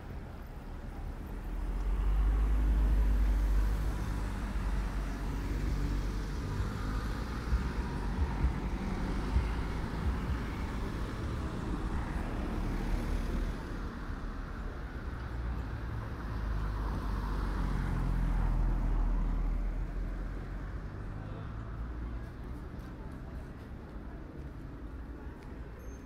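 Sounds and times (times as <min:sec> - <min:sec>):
cars driving past: 0:00.0 - 0:26.0.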